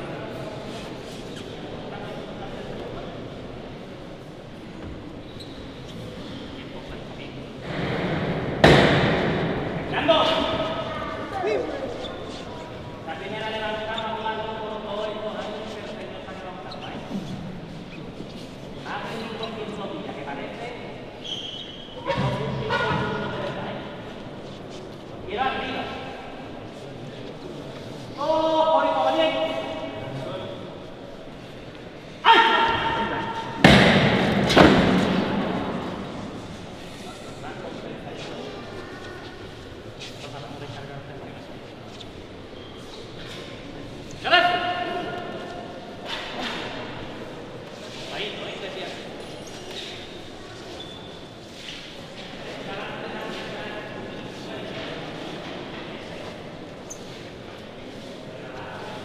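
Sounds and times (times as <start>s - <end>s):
crowd noise: 0.0s - 59.0s
loud sharp knock echoing: 7.7s - 10.0s, 32.6s - 35.8s.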